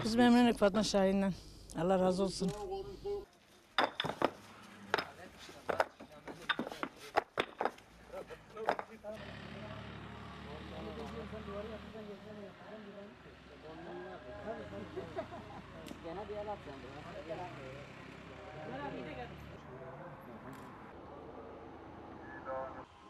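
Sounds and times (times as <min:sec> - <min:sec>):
paving stones knocking together: 0:03.8 - 0:07.9, 0:08.6 - 0:09.0.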